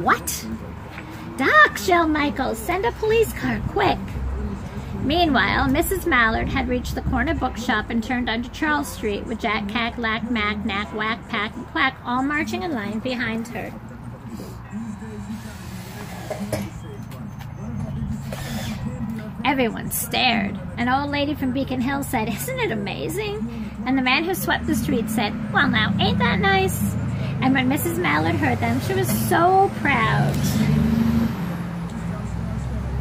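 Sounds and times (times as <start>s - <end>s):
low indistinct voice: 12.4s - 21.6s.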